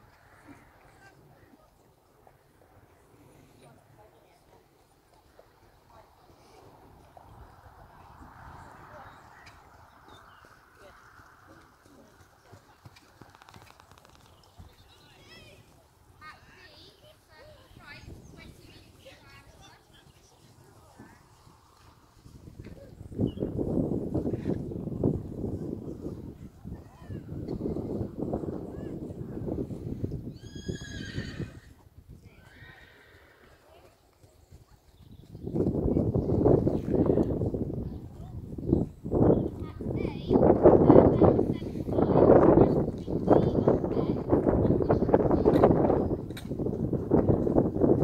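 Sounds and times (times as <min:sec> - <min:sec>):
horse whinnying: 0:30.3 - 0:31.8, 0:32.4 - 0:33.5.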